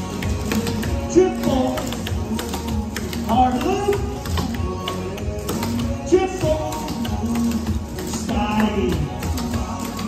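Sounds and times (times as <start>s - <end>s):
recorded dance music: 0.0s - 10.0s
tap shoes clicking on wooden stage: 0.0s - 10.0s.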